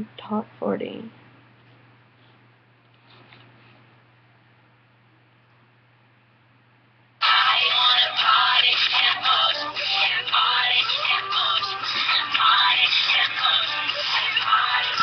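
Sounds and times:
pop song on radio: 0:07.2 - 0:15.0.

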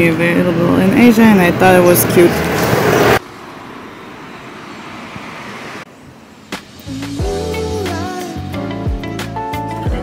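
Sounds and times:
street traffic hiss: 0:00.0 - 0:09.4.

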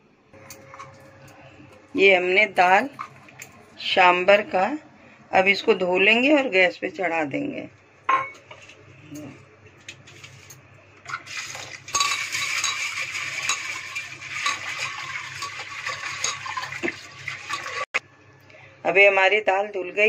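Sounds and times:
tap water running: 0:09.8 - 0:18.0.

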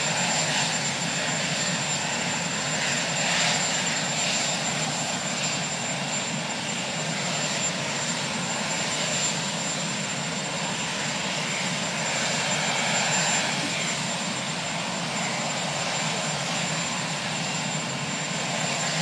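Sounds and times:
helicopter engine rushing: 0:00.0 - 0:19.0.

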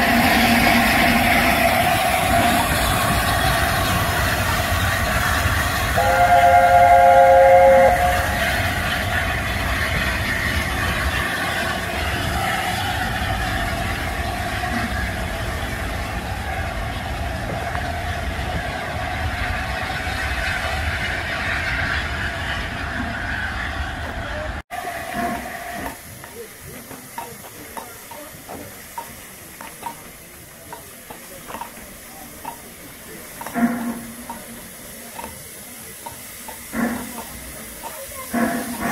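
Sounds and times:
steam hissing from locomotive: 0:00.0 - 0:38.9
train wheels rumbling on track: 0:00.0 - 0:38.9.

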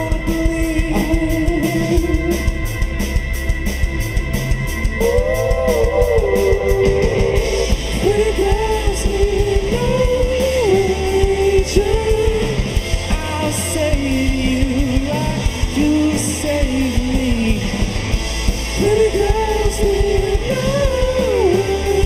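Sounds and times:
man singing: 0:00.0 - 0:02.7, 0:05.0 - 0:17.9, 0:18.7 - 0:22.0
drum kit: 0:00.0 - 0:22.0
electric guitars: 0:00.0 - 0:22.0.

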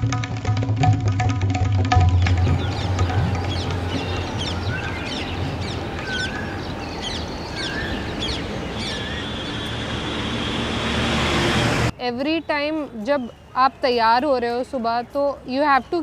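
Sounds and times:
distant traffic: 0:01.9 - 0:16.0
birds chirping: 0:02.1 - 0:16.0
whistled bird calls: 0:02.4 - 0:09.9.

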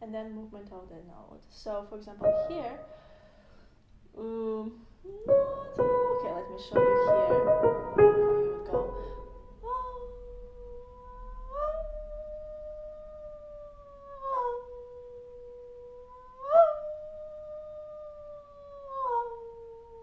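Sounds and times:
woman singing held gliding notes: 0:02.2 - 0:03.0, 0:04.2 - 0:20.0.

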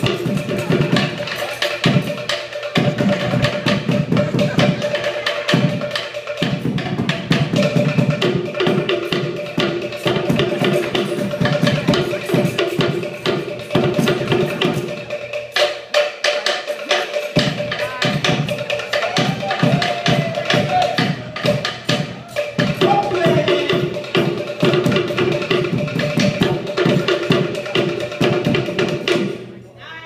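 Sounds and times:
wooden slit-drum strikes: 0:00.0 - 0:29.4.

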